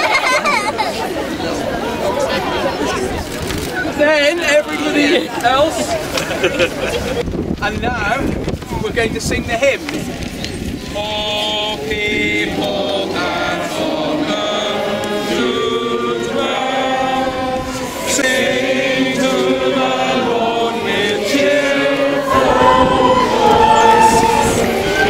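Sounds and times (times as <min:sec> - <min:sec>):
crowd singing a hymn: 0:10.8 - 0:25.0.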